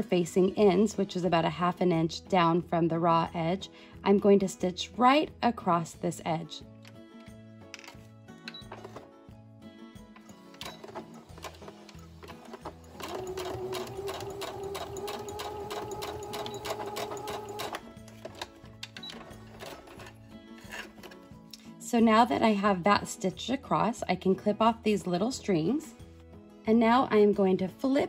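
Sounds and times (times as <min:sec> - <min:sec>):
background music: 0:00.0 - 0:28.0
sewing machine stitching: 0:10.6 - 0:18.5, 0:19.1 - 0:21.1.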